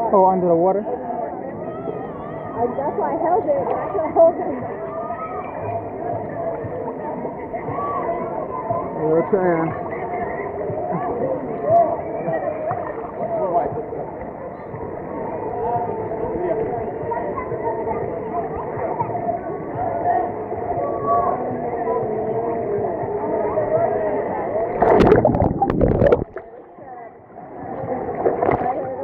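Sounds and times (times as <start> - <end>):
voices chattering and calling: 0.7 - 29.0.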